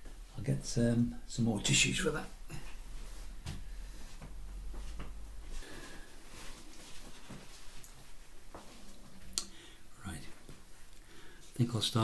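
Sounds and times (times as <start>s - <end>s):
paper towel rustling: 4.8s - 9.1s.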